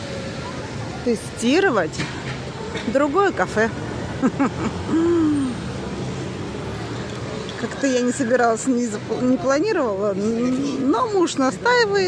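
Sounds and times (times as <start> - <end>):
street background noise: 0.0 - 12.0
woman's voice humming: 4.8 - 5.6.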